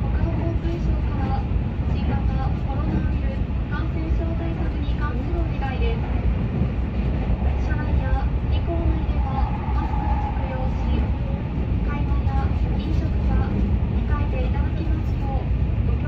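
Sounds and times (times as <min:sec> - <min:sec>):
train wheels rumbling on rails: 0:00.0 - 0:16.0.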